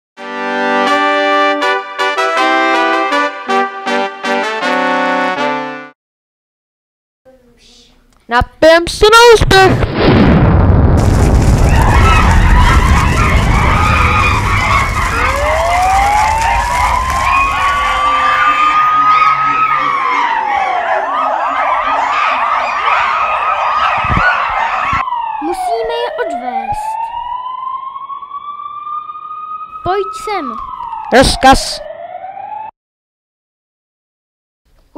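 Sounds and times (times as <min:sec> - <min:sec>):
loud rumbling crash: 0:09.7 - 0:19.0
police siren wailing: 0:11.1 - 0:32.7.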